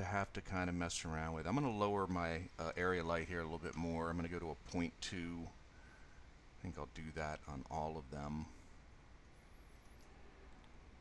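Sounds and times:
faint high-pitched wavering whine: 0.0s - 11.0s
faint steady hiss: 0.0s - 11.0s.

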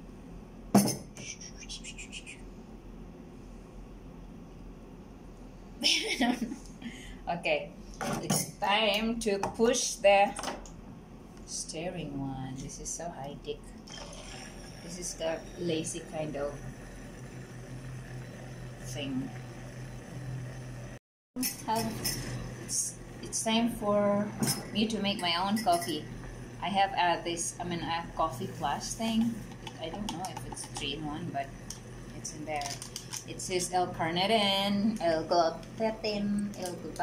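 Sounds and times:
low room hum: 0.0s - 37.0s
small motor humming: 13.8s - 23.4s.

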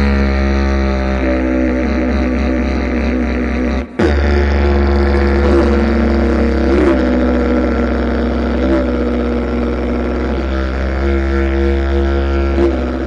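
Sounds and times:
didgeridoo drone: 0.0s - 13.0s.

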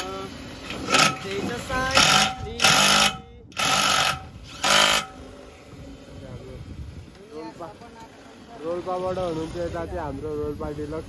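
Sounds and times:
cordless drill motor whining: 0.0s - 6.2s.

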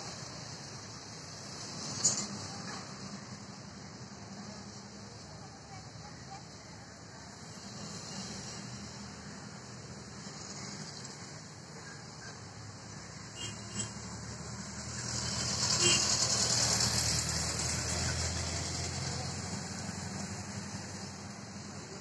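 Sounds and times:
engine passing by: 13.8s - 22.0s.

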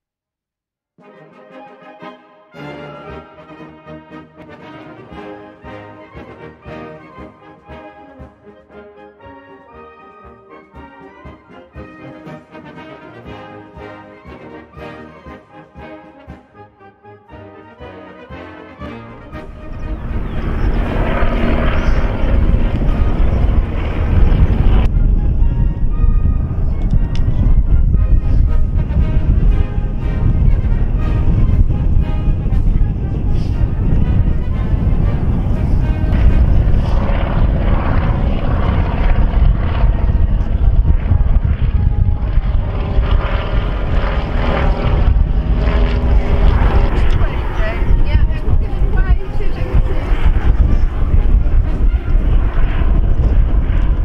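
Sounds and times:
propeller aircraft engine drone: 1.2s - 54.0s.

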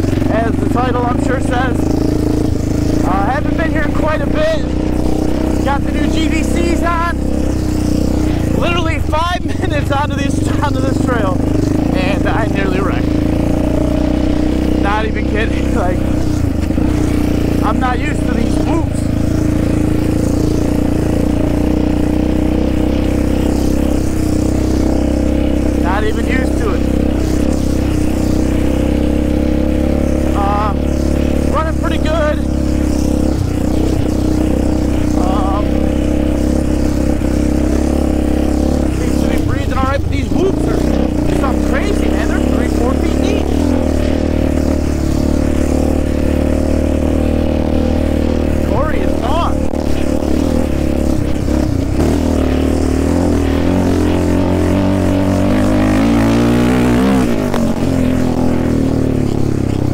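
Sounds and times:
atv engine cruising: 0.0s - 59.9s.

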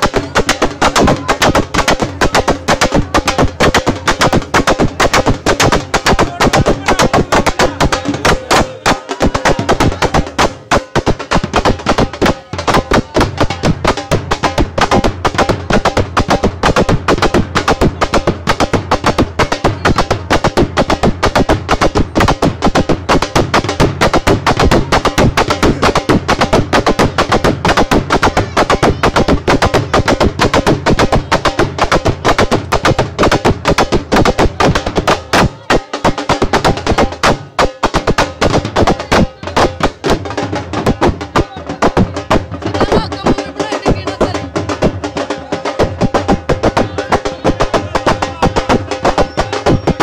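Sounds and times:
drums beaten fast: 0.0s - 50.0s.

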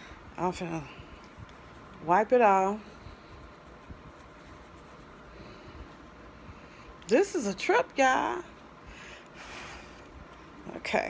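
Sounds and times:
cloth rubbing against skin: 0.4s - 6.3s, 9.4s - 11.0s.

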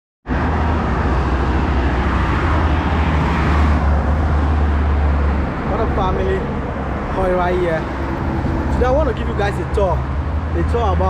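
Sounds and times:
cars passing: 0.3s - 11.0s
low traffic rumble: 0.3s - 11.0s.

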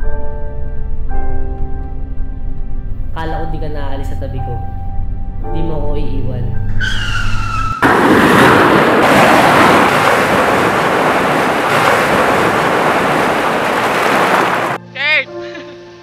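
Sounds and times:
music: 0.0s - 7.8s, 14.8s - 16.0s
car tyres squealing: 6.7s - 7.9s
crashing surf: 7.8s - 14.8s.

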